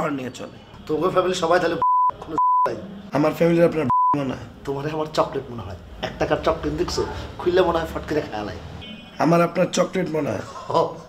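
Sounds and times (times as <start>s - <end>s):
man speaking: 0.0s - 11.0s
censor bleeps: 1.8s - 2.7s, 3.9s - 4.2s.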